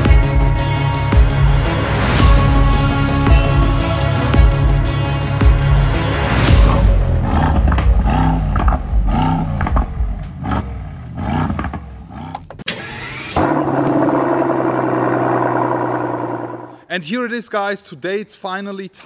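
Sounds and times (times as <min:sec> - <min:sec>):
car engine starting and running: 0:00.0 - 0:16.8.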